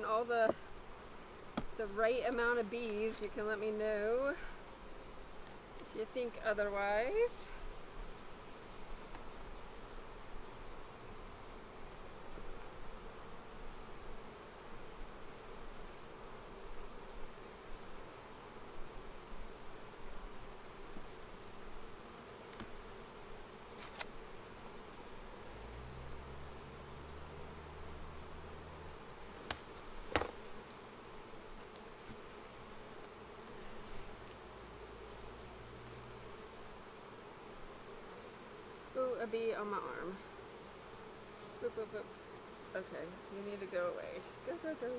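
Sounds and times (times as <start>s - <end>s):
bees buzzing: 0.0s - 44.9s.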